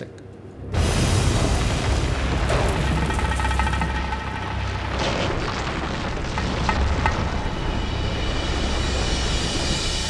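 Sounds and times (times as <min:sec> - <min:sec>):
deep volcanic rumble: 0:00.7 - 0:10.0.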